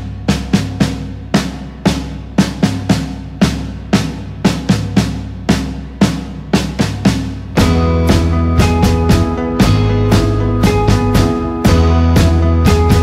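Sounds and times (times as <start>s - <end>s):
drum kit playing rock beat: 0.0s - 13.0s
held low bass notes: 7.5s - 13.0s.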